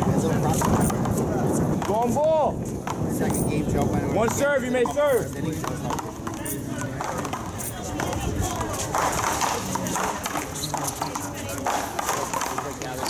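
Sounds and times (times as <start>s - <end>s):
people's voices: 0.0s - 13.0s
paddles hitting rubber ball: 0.4s - 13.0s.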